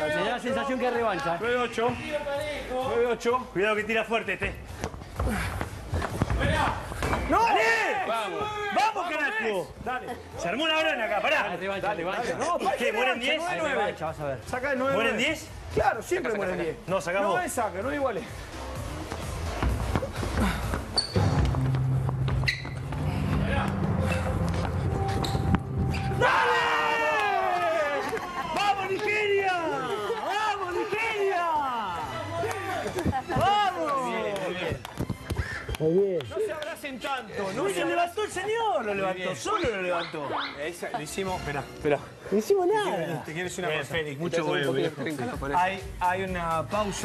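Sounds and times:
feet pounding the floor: 19.0s - 26.1s
people shouting: 25.9s - 32.2s.

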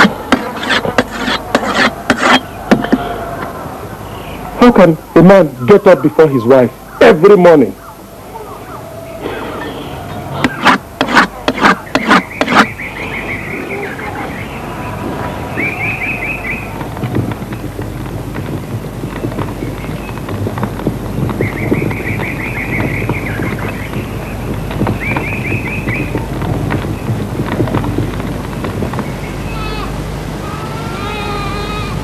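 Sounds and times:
steady noisy background: 0.0s - 32.0s.

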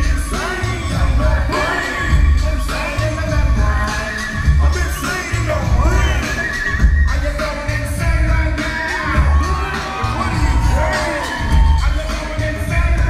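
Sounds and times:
live hip-hop music: 0.0s - 13.0s.

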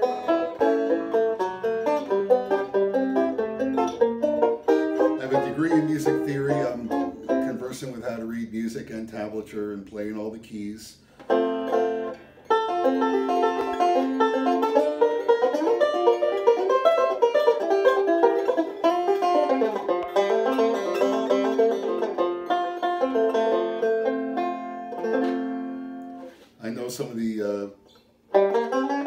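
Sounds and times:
banjo fingerpicked: 0.0s - 29.0s.

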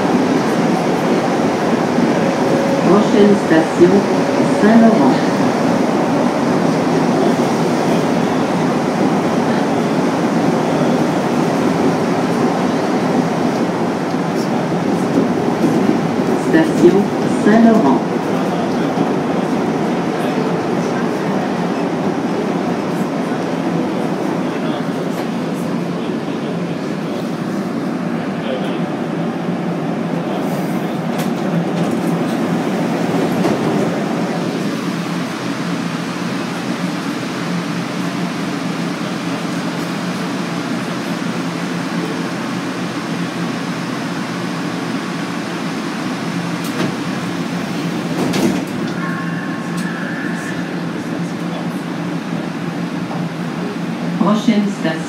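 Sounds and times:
standing train hum: 0.0s - 55.0s
train rolling rumble while braking: 0.0s - 55.0s.

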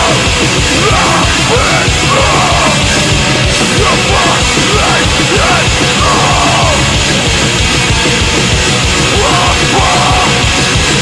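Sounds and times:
distorted guitars: 0.0s - 11.0s
harsh yelled vocal: 0.0s - 11.0s
rapid drumming: 0.0s - 11.0s.

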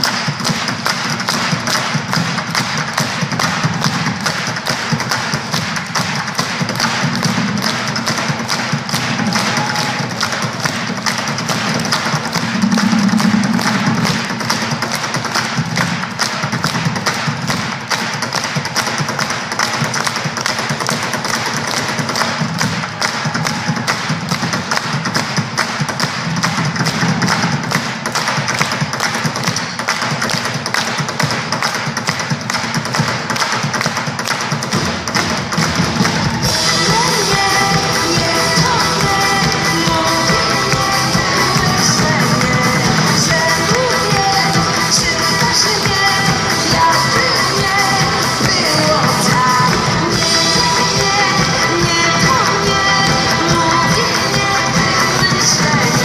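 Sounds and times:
fast percussive beat: 0.0s - 56.0s.

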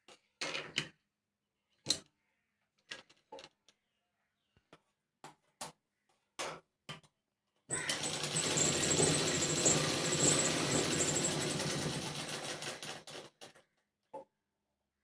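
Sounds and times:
sewing machine stitching: 7.7s - 13.6s.

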